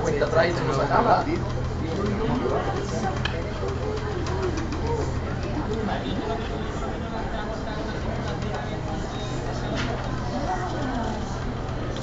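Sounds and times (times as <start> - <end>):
vibration machine humming: 0.0 - 12.0.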